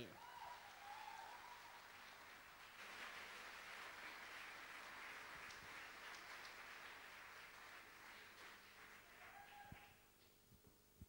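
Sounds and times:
faint audience applause: 0.0s - 10.2s
scattered claps: 0.6s - 10.3s.

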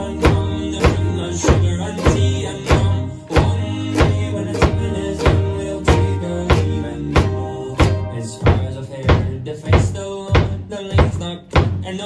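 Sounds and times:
drum kit steady beat: 0.0s - 12.0s
ukuleles strumming chords: 0.0s - 12.0s.

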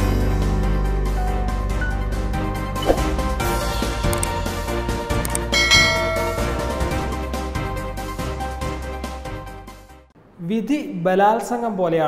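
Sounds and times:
background music: 0.0s - 10.1s
bell-like chime: 5.5s - 7.2s.

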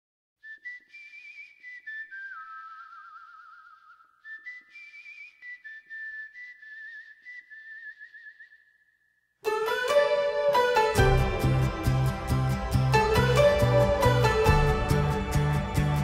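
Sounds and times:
person whistling a slow melody: 0.4s - 9.0s.

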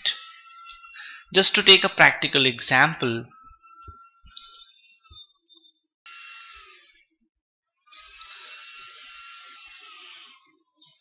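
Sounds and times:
person breathing: 1.0s - 1.4s.

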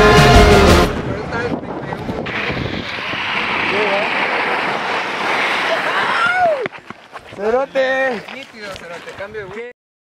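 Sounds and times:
wind on microphone: 0.9s - 7.4s
longboard wheels rolling on asphalt: 1.8s - 9.8s.

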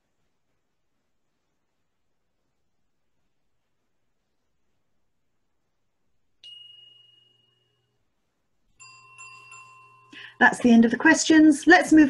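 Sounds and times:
bright chiming notes: 6.4s - 8.0s, 8.8s - 11.1s.

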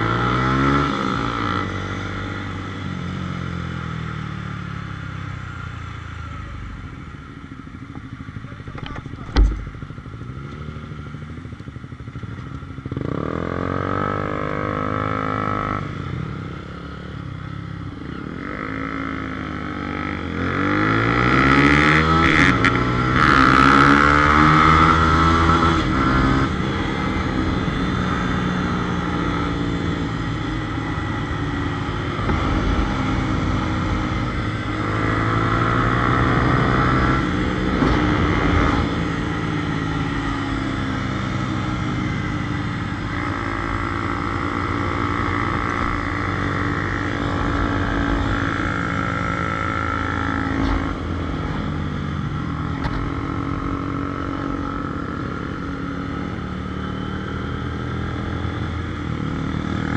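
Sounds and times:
motorcycle engine running: 0.0s - 59.9s
road noise rushing: 17.4s - 59.9s.

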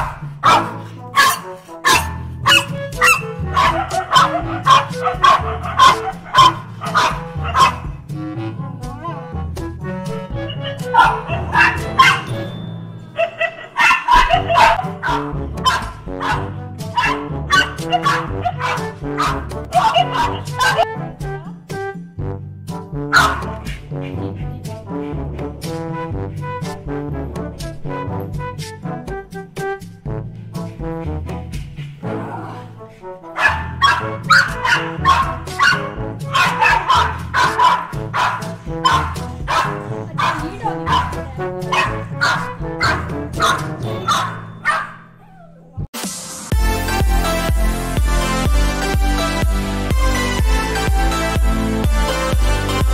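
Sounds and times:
dog barking: 0.0s - 7.9s, 10.4s - 12.4s, 13.2s - 20.9s, 23.1s - 23.6s, 33.3s - 45.9s
background music: 0.0s - 52.9s.

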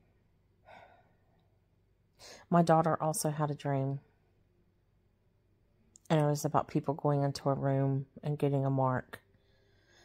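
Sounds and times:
woman breathing: 0.6s - 2.5s, 9.2s - 10.0s.

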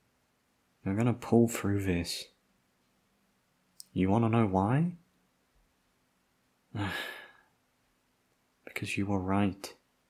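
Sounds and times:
man sighing: 6.7s - 7.5s.

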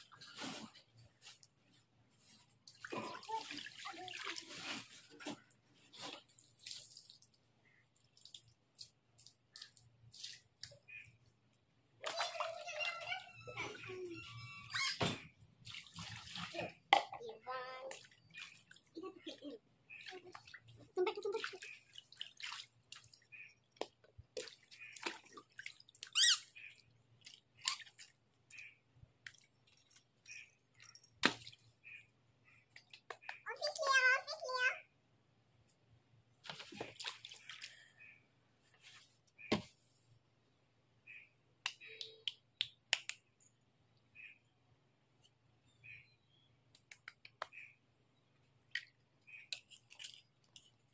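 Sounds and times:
water splashing in paddling pool: 2.6s - 7.4s, 12.0s - 13.4s, 15.6s - 28.2s, 36.4s - 37.9s
plastic toys clicking in water: 48.7s - 50.9s.

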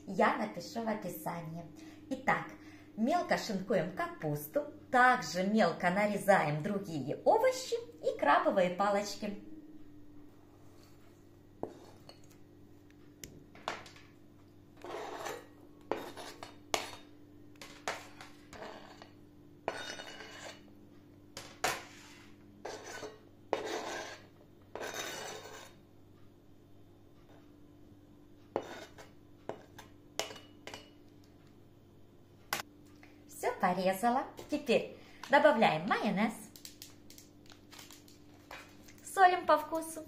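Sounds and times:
knife scraping cutting board: 11.6s - 12.2s, 14.8s - 17.0s, 17.7s - 20.7s, 21.7s - 25.8s, 28.5s - 29.9s.

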